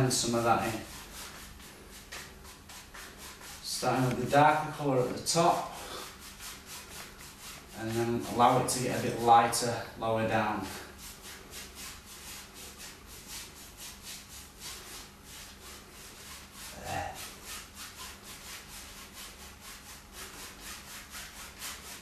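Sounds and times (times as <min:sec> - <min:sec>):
paintbrush scrubbing on canvas: 0:00.0 - 0:22.0.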